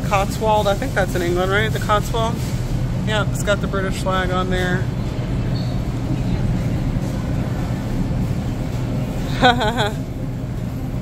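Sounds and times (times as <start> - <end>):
refrigeration rumble and hum: 0.0 - 11.0.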